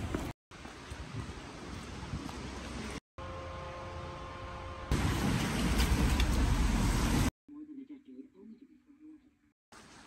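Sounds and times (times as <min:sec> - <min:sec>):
road traffic: 0:00.0 - 0:07.3.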